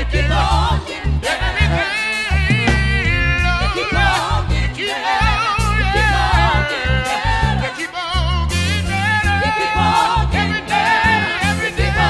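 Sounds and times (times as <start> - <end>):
electronic keyboard accompaniment: 0.0 - 12.0
low moving bass line: 0.0 - 12.0
singers with vibrato: 0.0 - 12.0.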